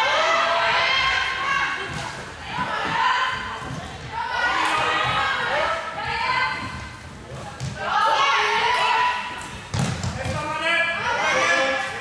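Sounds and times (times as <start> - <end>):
high voices shouting in a hall: 0.0 - 7.0, 7.8 - 9.8, 10.4 - 12.0.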